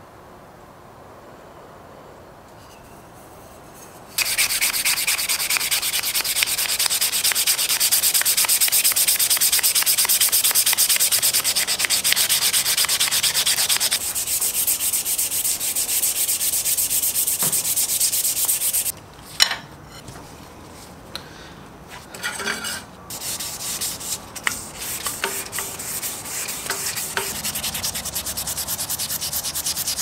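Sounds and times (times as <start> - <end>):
sandpaper rubbing on metal tube: 3.2 - 18.9, 22.2 - 30.0.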